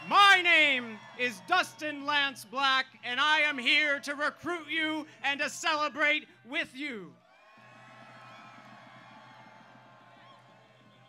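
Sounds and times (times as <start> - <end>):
faint crowd cheering: 0.0 - 11.0.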